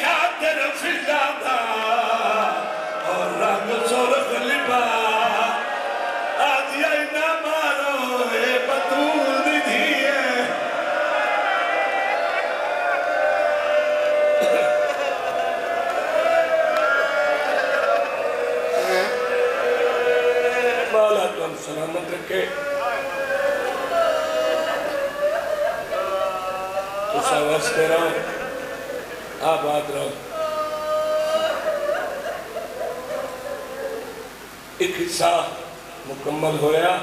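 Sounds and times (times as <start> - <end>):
people wailing in grief: 1.2 - 6.9, 8.0 - 34.8
man weeping aloud: 14.2 - 21.1, 22.5 - 29.6, 30.3 - 34.4.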